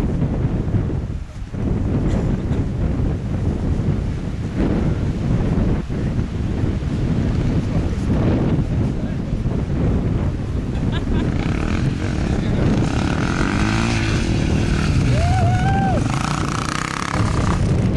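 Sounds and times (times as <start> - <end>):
wind buffeting microphone: 0.0 - 17.9
distant dirt bike engine revving: 11.0 - 17.9.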